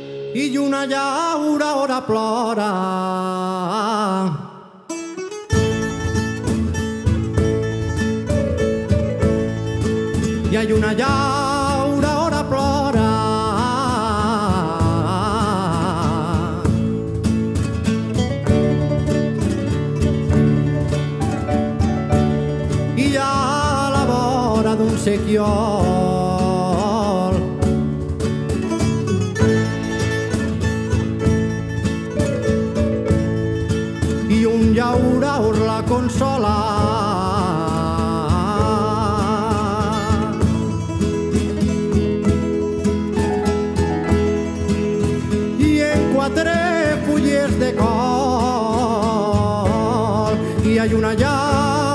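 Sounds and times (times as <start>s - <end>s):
plucked guitars: 0.0s - 1.2s, 4.3s - 51.9s
man singing with vibrato: 0.0s - 8.3s, 9.4s - 17.5s, 21.2s - 28.2s, 33.9s - 51.9s
bass line: 5.5s - 51.9s.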